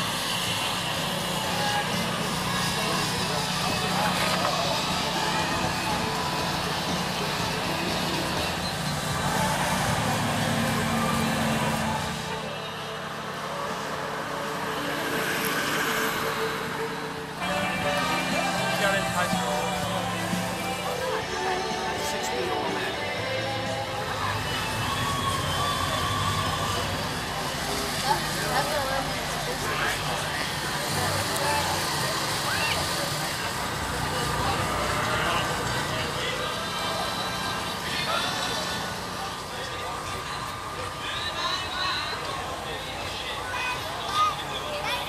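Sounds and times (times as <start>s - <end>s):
car engine running: 0.0s - 44.7s
people talking: 0.0s - 45.0s.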